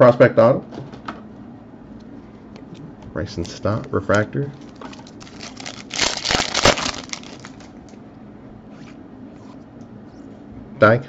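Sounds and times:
cards rustling: 0:03.4 - 0:08.0
foil wrapper tearing and crinkling: 0:04.6 - 0:07.9.

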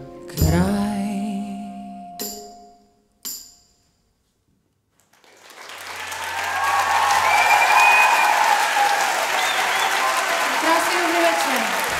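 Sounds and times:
audience applauding and cheering: 0:05.0 - 0:11.9.

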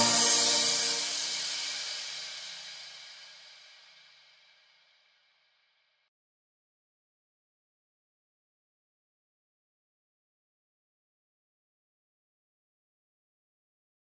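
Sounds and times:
music final chord: 0:00.0 - 0:02.5
cymbal crash: 0:00.0 - 0:04.0.

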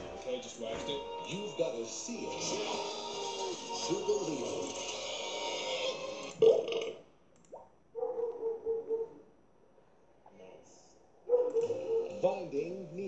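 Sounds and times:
cartoon voices on tv: 0:00.0 - 0:07.1, 0:11.5 - 0:13.0.

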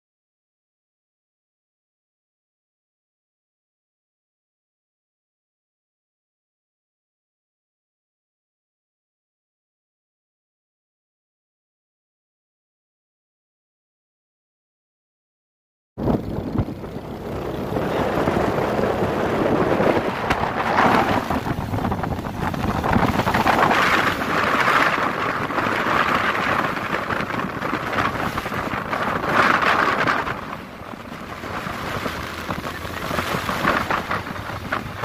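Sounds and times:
motorcycle engine: 0:16.0 - 0:35.0
motorcycle road noise: 0:16.0 - 0:35.0
wind buffeting microphone: 0:16.0 - 0:35.0.

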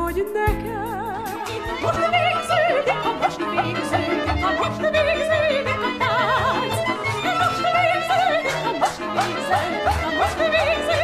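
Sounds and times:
instrumental accompaniment: 0:00.0 - 0:11.0
woman singing soprano: 0:00.0 - 0:11.0.

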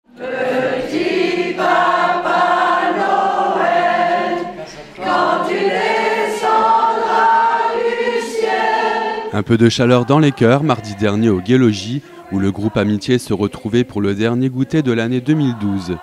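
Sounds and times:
women singing in chorus: 0:00.1 - 0:16.0.

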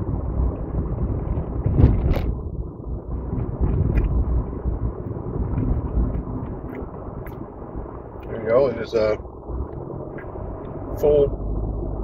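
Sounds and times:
low rumble inside car: 0:00.0 - 0:12.0.

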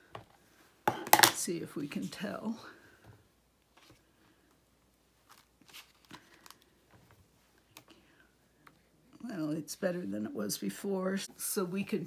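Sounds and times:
paper and plastic rustling: 0:05.2 - 0:07.3.

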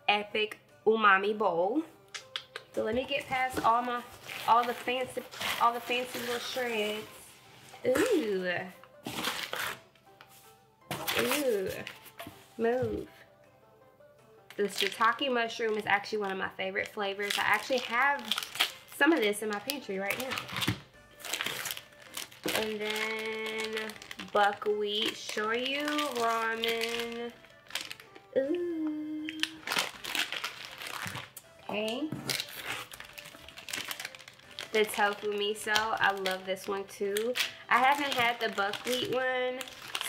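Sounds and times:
faint background music: 0:00.0 - 0:40.0
plastic wrapping crinkling: 0:03.0 - 0:12.3, 0:14.5 - 0:28.2, 0:29.3 - 0:40.0
rustling of paper and cardboard: 0:03.1 - 0:07.9, 0:09.0 - 0:13.0.

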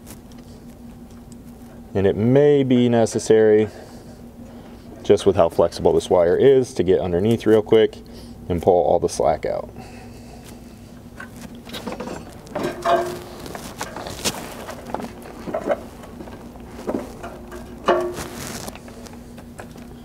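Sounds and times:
wiring rustling and scraping: 0:10.3 - 0:20.0.

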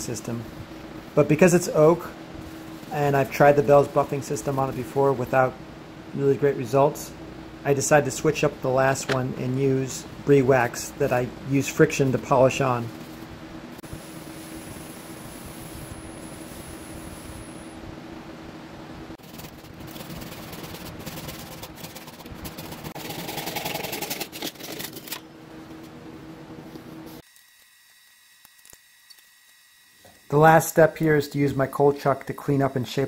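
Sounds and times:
rubbing on spinning wooden bowl: 0:19.2 - 0:24.9.

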